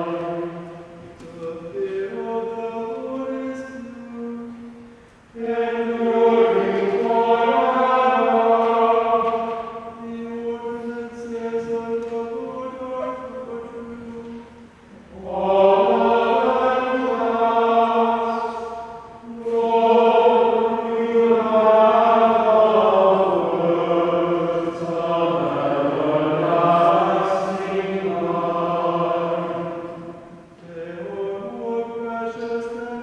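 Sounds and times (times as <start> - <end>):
chant-like singing: 0.0 - 33.0.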